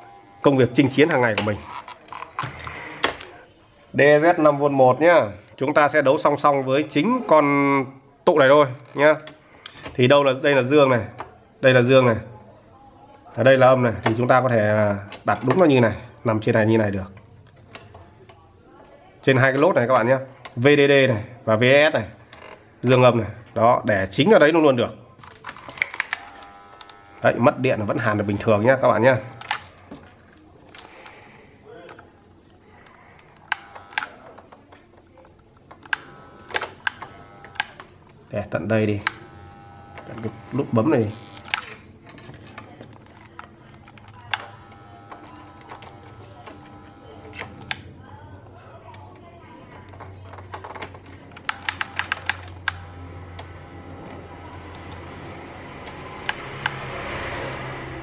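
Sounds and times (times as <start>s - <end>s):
sharp plastic click: 33.2s - 38.0s, 48.8s - 55.0s.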